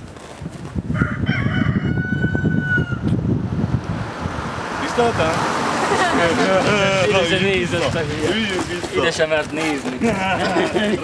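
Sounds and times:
rooster crowing: 0.9s - 3.1s
car approaching rumble: 3.2s - 9.4s.

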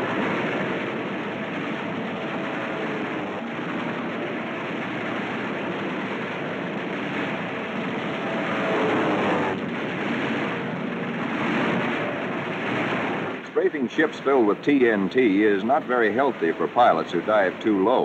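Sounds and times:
warplane piston engine drone: 0.0s - 18.0s.

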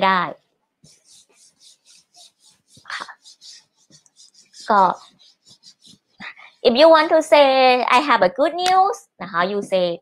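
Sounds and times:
woman speaking: 0.0s - 0.4s, 4.6s - 5.1s, 6.2s - 10.0s
eraser rubbing on whiteboard: 0.8s - 7.2s.

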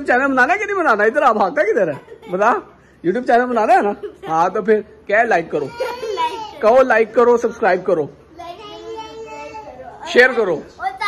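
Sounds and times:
family voices talking excitedly: 0.0s - 11.0s.

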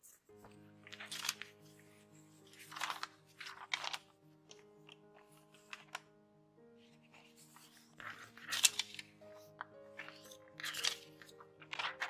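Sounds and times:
paper crackling and rustling: 0.0s - 6.2s, 6.8s - 12.0s
soft background music: 0.0s - 12.0s.

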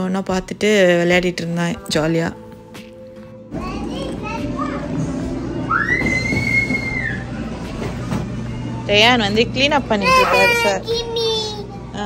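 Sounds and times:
children playing: 3.5s - 8.1s, 9.9s - 12.0s.

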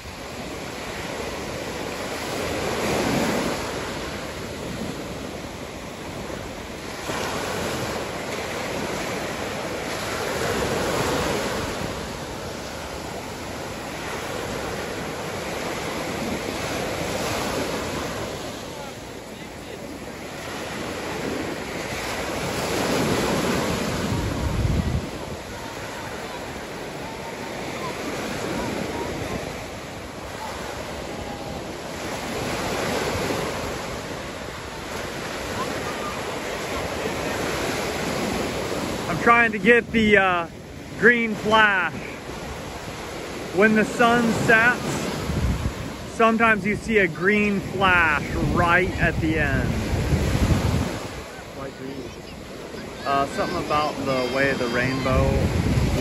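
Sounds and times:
ocean waves breaking on beach: 0.0s - 56.0s.

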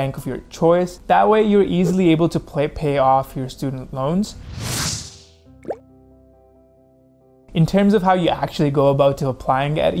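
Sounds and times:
whoosh: 4.3s - 5.4s
rising bloop pop: 5.6s - 5.8s.

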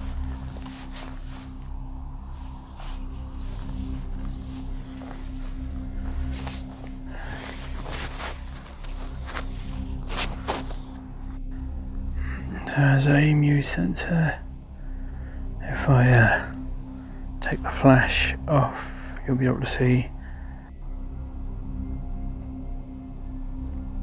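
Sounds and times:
footsteps on grass: 0.0s - 11.2s
steady low hum: 0.0s - 24.0s.

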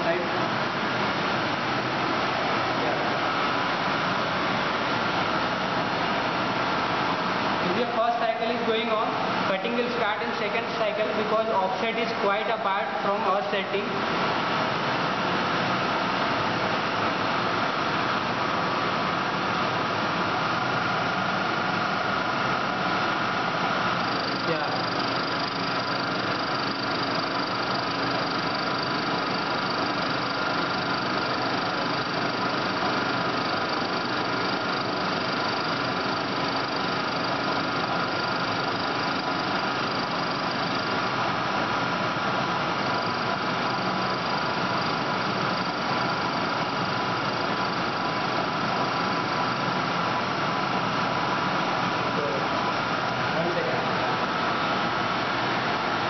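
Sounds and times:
high-pitched machine whine: 0.0s - 56.0s
lathe machine hum: 13.9s - 56.0s.

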